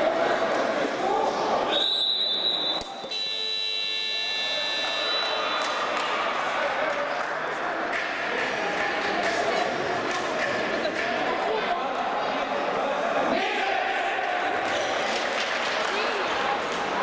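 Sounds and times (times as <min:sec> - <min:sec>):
electronic buzzer: 0:03.1 - 0:05.4.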